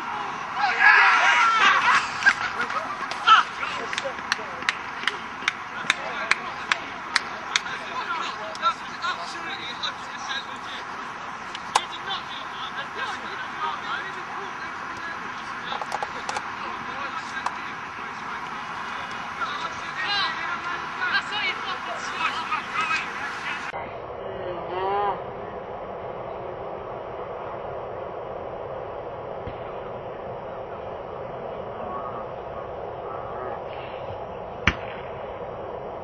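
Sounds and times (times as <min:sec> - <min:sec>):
players shouting: 0:00.0 - 0:23.8.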